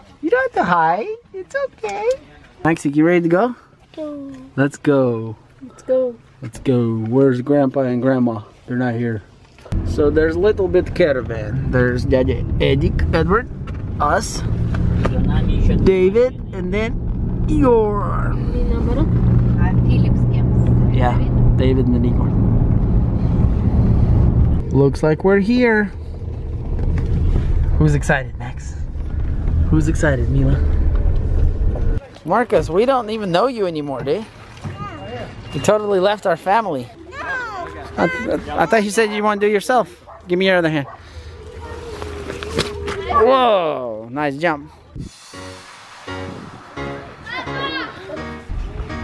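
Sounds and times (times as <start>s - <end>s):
car cabin road and engine drone: 8.7s - 36.6s
wind rumble: 9.7s - 32.0s, 40.9s - 43.8s, 44.8s - 49.0s.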